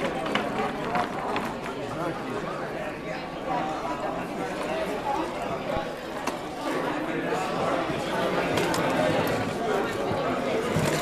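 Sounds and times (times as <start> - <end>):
hubbub of conversation: 0.0 - 11.0.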